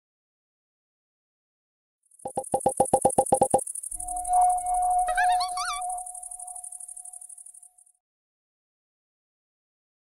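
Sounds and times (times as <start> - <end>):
held synthesizer tone: 2.3 - 7.2
warbling electronic chirps: 2.3 - 7.8.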